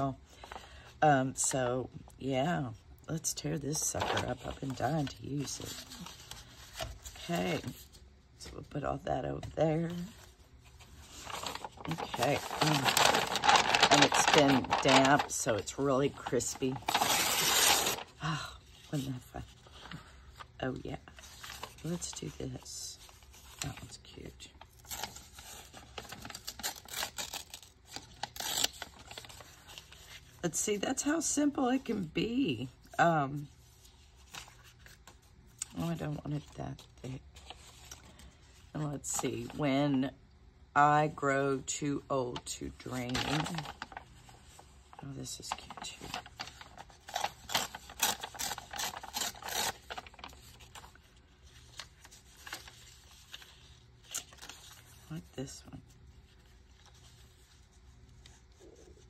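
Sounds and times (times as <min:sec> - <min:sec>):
paper rustling and crackling: 0:03.8 - 0:08.6, 0:09.4 - 0:30.4, 0:33.4 - 0:39.6, 0:42.5 - 0:59.0.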